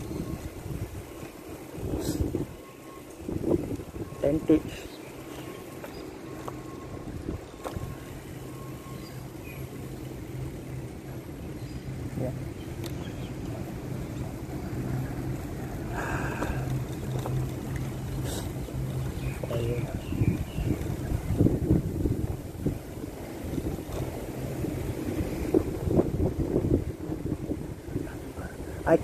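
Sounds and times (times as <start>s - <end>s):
wind rush on microphone: 0.0s - 4.8s, 13.3s - 29.0s
steady low hum: 0.0s - 29.0s.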